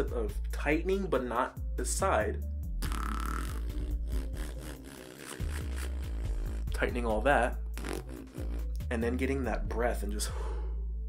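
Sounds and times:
electronic music with deep bass: 2.6 - 9.7.

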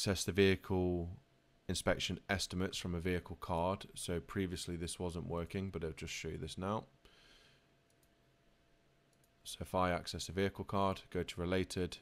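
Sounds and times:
computer mouse clicks: 7.9 - 8.2.

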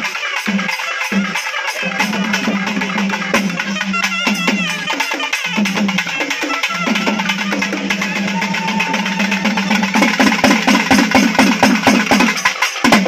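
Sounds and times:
loud drumming: 0.0 - 13.0.

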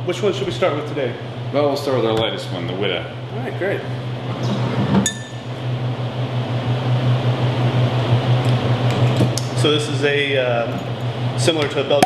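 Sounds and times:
steady low hum: 0.0 - 12.0
glass bottle clinking: 5.0 - 5.4.

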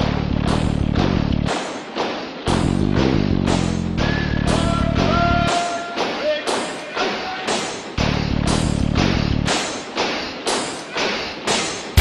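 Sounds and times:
percussive hits: 0.0 - 12.0.

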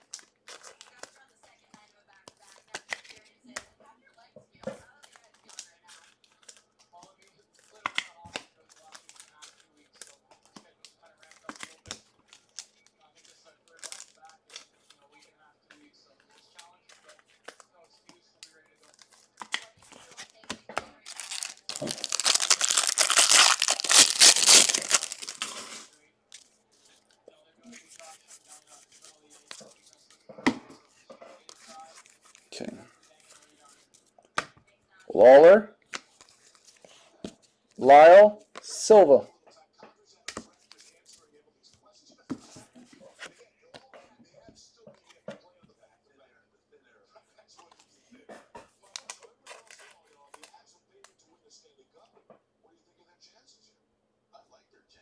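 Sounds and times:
wrappers and cards crinkling: 0.0 - 1.2, 5.0 - 15.0, 18.4 - 27.1, 31.5 - 34.1, 48.9 - 50.5
wrapper ripping open: 21.0 - 25.9.

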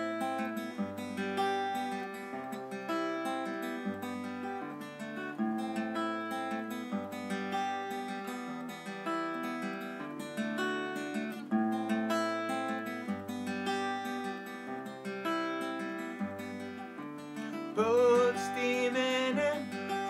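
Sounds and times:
fingerstyle acoustic guitar: 0.0 - 20.0.

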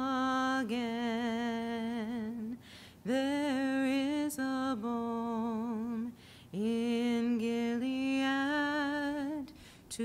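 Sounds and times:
intake of breath: 2.6 - 3.0, 6.1 - 6.5, 9.6 - 9.9.

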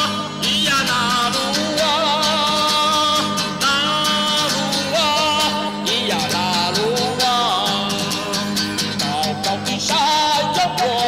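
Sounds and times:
acoustic guitar strumming: 0.0 - 11.0
man singing loudly: 0.0 - 11.0.

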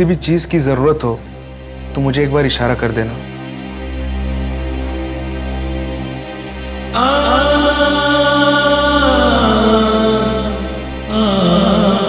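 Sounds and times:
low drone: 0.0 - 12.0
wordless vocal line: 6.5 - 12.0.

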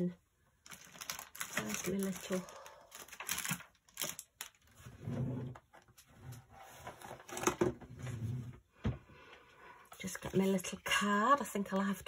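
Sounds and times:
packaging rustling: 0.6 - 4.9.

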